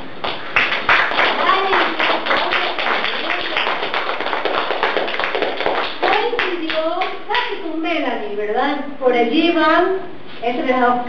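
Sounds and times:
small group applauding: 0:00.2 - 0:07.5
woman speaking: 0:01.4 - 0:03.8, 0:06.0 - 0:11.0.

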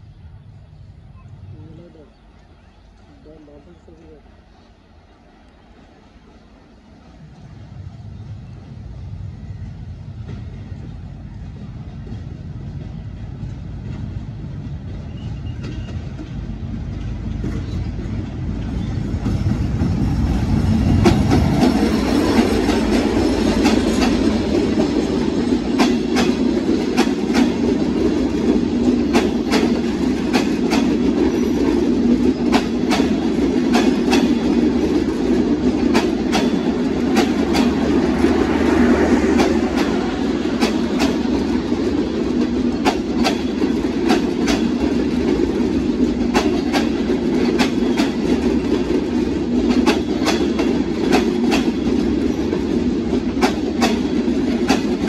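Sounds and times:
train wheels rumbling on rails: 0:00.0 - 0:55.0
wheels clicking over rail joints: 0:20.9 - 0:55.0.

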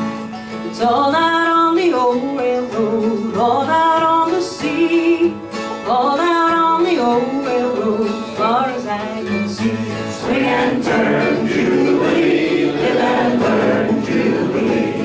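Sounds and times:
acoustic guitar strumming: 0:00.0 - 0:15.0
plucked string instrument: 0:00.0 - 0:15.0
people singing: 0:06.8 - 0:15.0.

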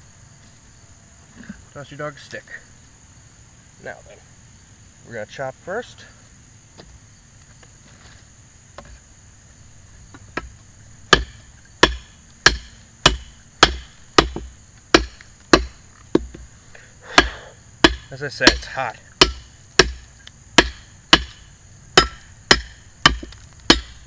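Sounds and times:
high insect trill: 0:00.0 - 0:24.0
knife chopping into branch: 0:11.1 - 0:16.4, 0:17.1 - 0:21.4.

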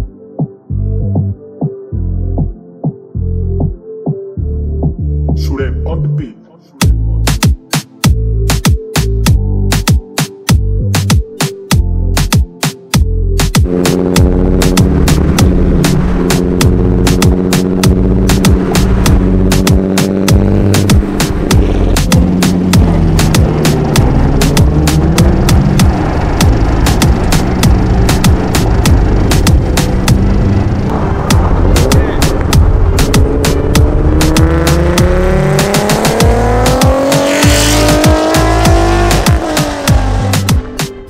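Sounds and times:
instrumental beat: 0:06.8 - 0:41.0
car engine accelerating: 0:13.6 - 0:41.0.

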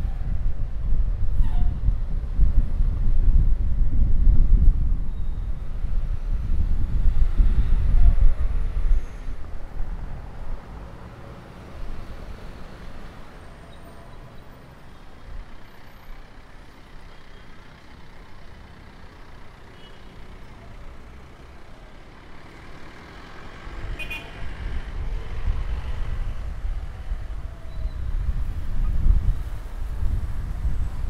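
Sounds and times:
road traffic passing: 0:00.0 - 0:31.0.

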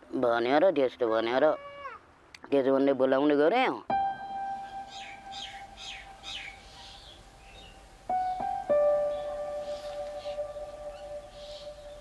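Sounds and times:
held musical note: 0:03.9 - 0:06.8, 0:07.7 - 0:12.0
quick descending bird chirps: 0:04.6 - 0:08.4.

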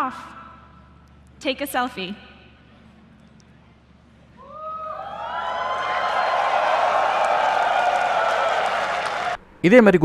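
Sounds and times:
audience cheering and whooping: 0:04.4 - 0:09.4
audience applauding: 0:05.0 - 0:09.4.

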